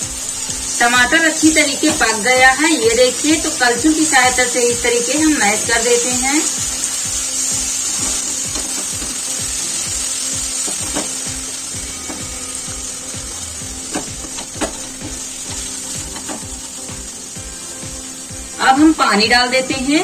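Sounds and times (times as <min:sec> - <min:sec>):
steady sizzle: 0:00.0 - 0:20.0.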